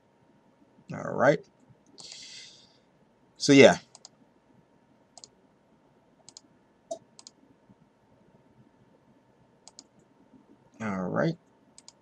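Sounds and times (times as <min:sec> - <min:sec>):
computer mouse clicks: 0:01.9 - 0:02.4, 0:03.9 - 0:04.2, 0:05.2 - 0:05.4, 0:06.2 - 0:07.4, 0:09.6 - 0:10.1, 0:11.8 - 0:12.0.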